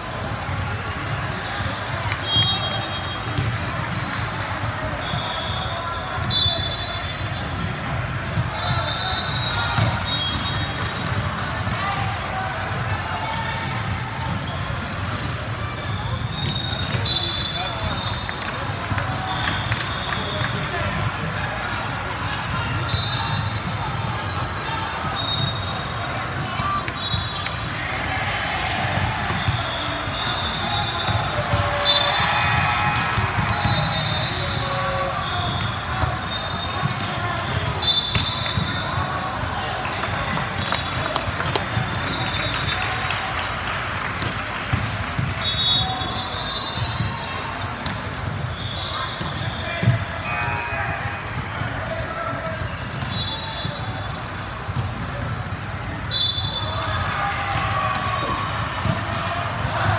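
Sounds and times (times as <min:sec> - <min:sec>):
balls bouncing and being struck: 0:00.1 - 0:21.5, 0:28.7 - 0:42.7, 0:44.0 - 0:46.2, 0:46.8 - 0:50.3, 0:51.0 - 0:59.9
sneaker squeaks on hardwood floor: 0:15.5 - 0:18.4, 0:41.5 - 0:42.6, 0:45.2 - 0:50.0.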